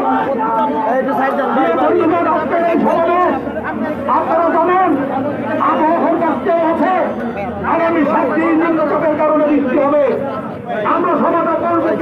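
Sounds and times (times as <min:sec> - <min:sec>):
people talking: 0:00.0 - 0:12.0
voices chattering: 0:00.0 - 0:12.0.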